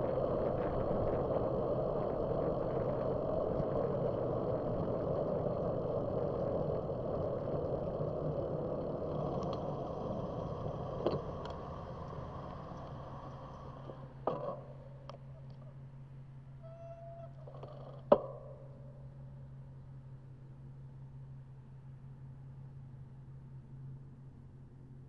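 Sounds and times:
wind and road rush: 0.0 - 14.1.

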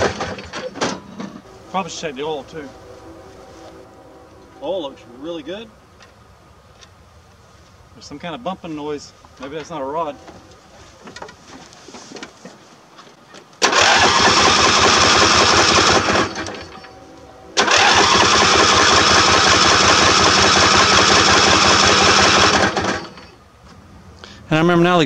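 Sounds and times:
engine cranking on starter: 0.0 - 1.0, 13.6 - 17.0, 17.6 - 23.4.

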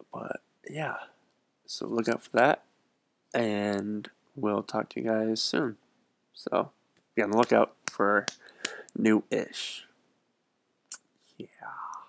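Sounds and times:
breathy voice sound: 11.3 - 12.0.

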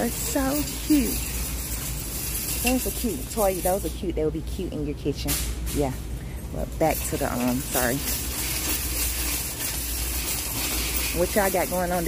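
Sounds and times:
shopping cart rolling: 0.0 - 6.0, 6.6 - 12.0
low steady hum: 0.0 - 12.0.

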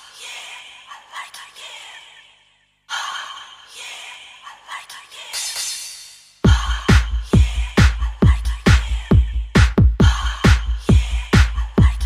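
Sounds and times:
whispered vocal sample: 0.0 - 5.4.

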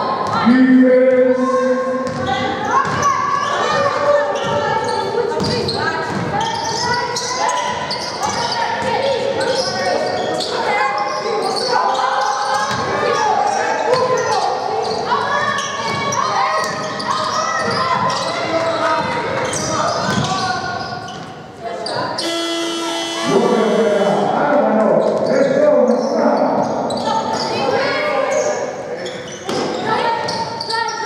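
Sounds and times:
basketball bouncing in hall: 0.0 - 10.7, 11.5 - 27.7
voices calling: 21.7 - 31.0
steady electronic tone: 22.2 - 24.5.

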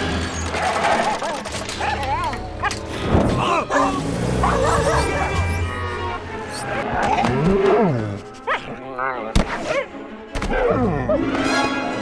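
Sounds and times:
soundtrack music: 0.0 - 12.0.

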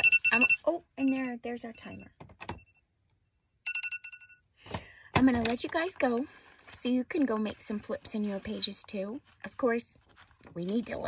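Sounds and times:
timer alarm rapid high beeps: 0.0 - 2.8, 3.7 - 4.4.

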